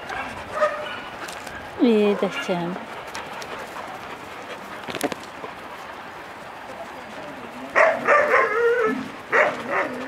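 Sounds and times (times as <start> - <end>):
dog yipping: 7.8 - 10.0.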